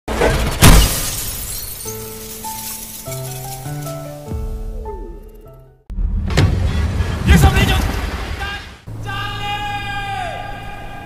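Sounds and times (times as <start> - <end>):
glass window shattering: 0.3 - 4.1.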